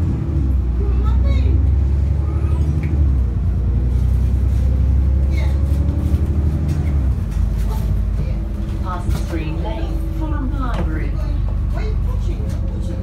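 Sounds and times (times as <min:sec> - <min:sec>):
bus diesel engine drone: 0:00.0 - 0:13.0.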